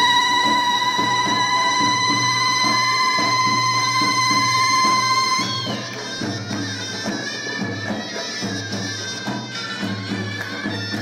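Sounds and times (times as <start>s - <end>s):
drum beat: 0.0s - 11.0s
shawm holding high note: 0.0s - 11.0s.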